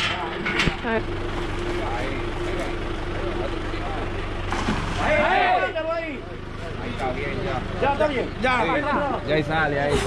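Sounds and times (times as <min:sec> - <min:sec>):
tractor engine running: 0:00.0 - 0:10.0.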